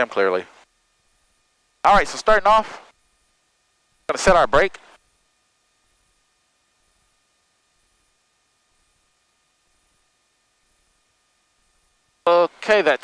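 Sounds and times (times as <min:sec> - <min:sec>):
thin steady tones: 0:00.0 - 0:13.0.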